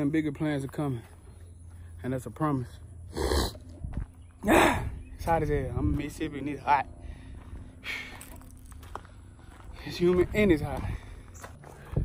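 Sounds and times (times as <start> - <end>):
wind rumble on microphone: 11.8 - 12.0.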